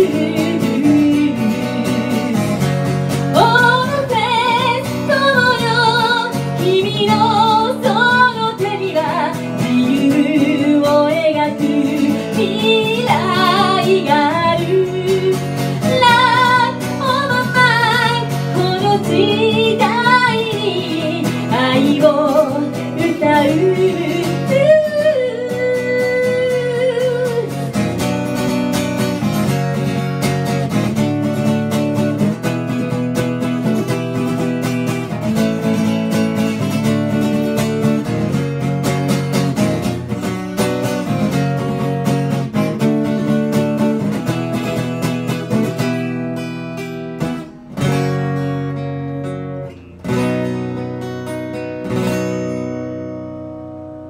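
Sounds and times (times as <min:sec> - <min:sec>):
woman singing: 0:00.0 - 0:27.8
acoustic guitar playing: 0:00.0 - 0:54.0.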